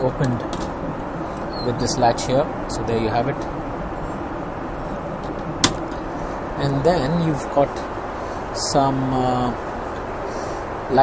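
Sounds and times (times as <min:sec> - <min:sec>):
airplane cabin noise: 0:00.0 - 0:11.0.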